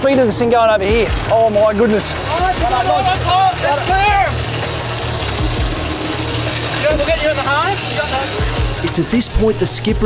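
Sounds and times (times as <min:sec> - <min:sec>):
boat engine drone: 0:00.0 - 0:10.0
excited shouting: 0:02.2 - 0:04.4.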